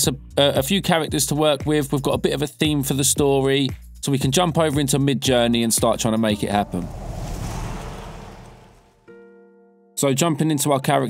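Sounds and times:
whoosh sound effect: 6.3 - 9.0.

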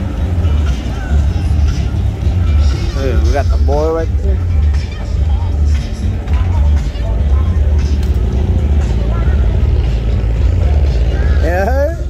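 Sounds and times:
car stereo bass pulsing: 0.0 - 12.0
cars passing with rumble: 0.0 - 12.0.

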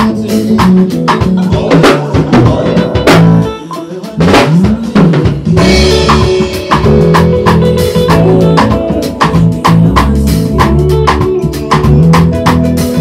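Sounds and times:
bass line: 0.0 - 13.0
drum kit beat: 0.0 - 13.0
electric guitar: 0.0 - 13.0
keyboard: 0.0 - 13.0.

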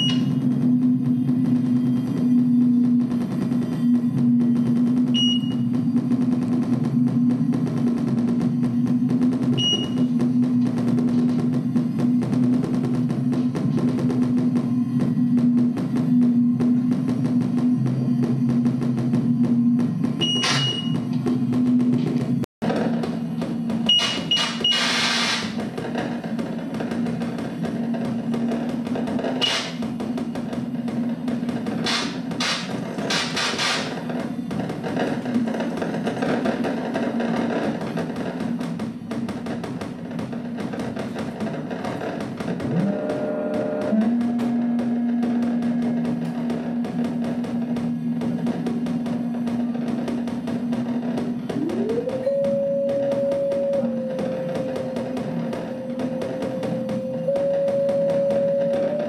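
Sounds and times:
loud noise bursts: 0.0 - 59.0
low synthesizer drone: 0.0 - 59.0
tone gliding up: 42.6 - 59.0.

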